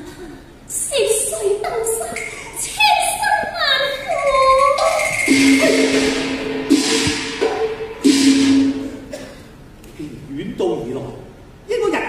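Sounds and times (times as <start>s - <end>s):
opera orchestra playing: 4.5s - 9.2s
loud crashing strikes: 4.8s - 9.3s.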